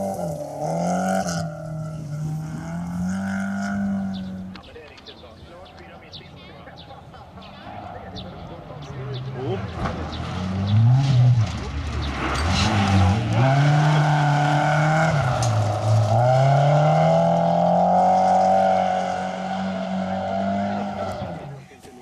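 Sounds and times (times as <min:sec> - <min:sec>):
rally car engine revving: 0:00.0 - 0:04.7, 0:06.7 - 0:21.7.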